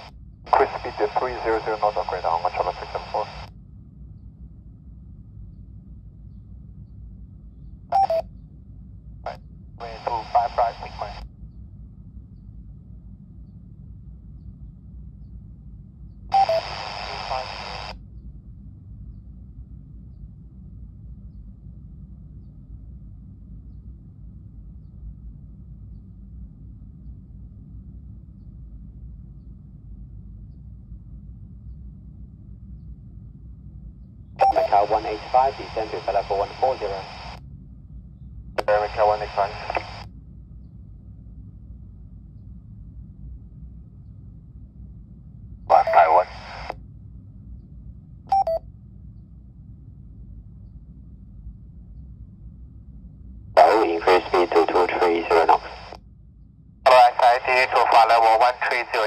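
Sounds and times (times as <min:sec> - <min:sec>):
radio transmission bursts with voice: 0:00.0 - 0:03.5, 0:09.8 - 0:11.2, 0:16.4 - 0:17.9, 0:34.4 - 0:37.4, 0:38.6 - 0:40.0, 0:45.7 - 0:46.7, 0:53.6 - 0:56.0, 0:56.9 - 0:59.0
low steady hum: 0:00.0 - 0:59.0.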